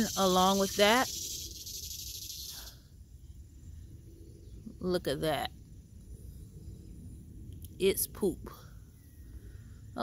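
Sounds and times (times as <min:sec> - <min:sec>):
high insect buzz: 0:00.0 - 0:02.9
faint low rumble: 0:02.7 - 0:10.0.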